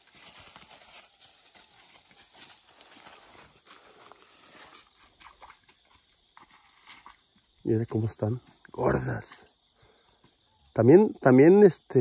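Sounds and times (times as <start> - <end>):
brush rustling: 0.0 - 5.8
cow hoof steps on dirt and leaves: 0.0 - 8.6.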